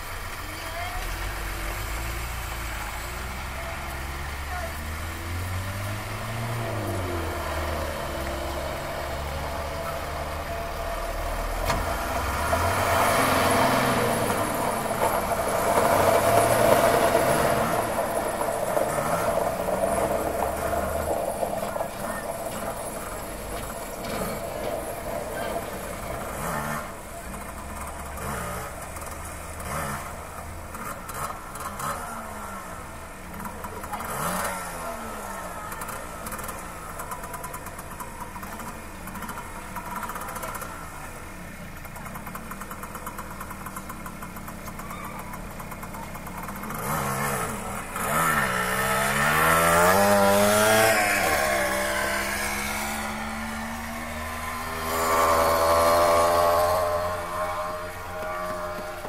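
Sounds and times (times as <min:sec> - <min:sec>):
vehicle engines at low speed: 0:00.0 - 0:59.0
vehicle accelerating past: 0:01.1 - 0:32.7, 0:46.7 - 0:59.0.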